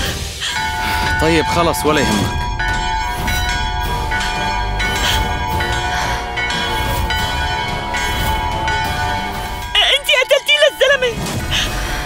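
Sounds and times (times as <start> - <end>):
brass bells ringing: 0.0 - 12.0.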